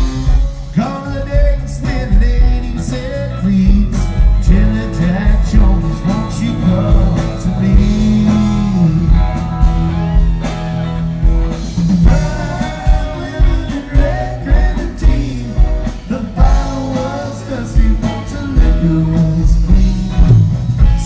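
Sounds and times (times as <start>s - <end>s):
live rock band playing: 0.0s - 21.0s
low bending lead guitar line: 0.0s - 21.0s.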